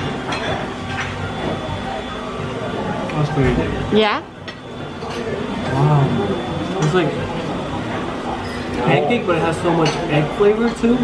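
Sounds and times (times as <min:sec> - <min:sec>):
cutlery clinking on plates: 0:00.0 - 0:01.6, 0:08.4 - 0:09.0, 0:09.7 - 0:11.0
background conversation: 0:00.0 - 0:11.0.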